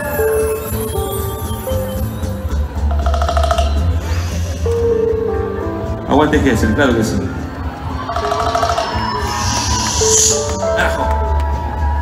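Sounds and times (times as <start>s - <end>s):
live band music over sound system: 0.0s - 12.0s.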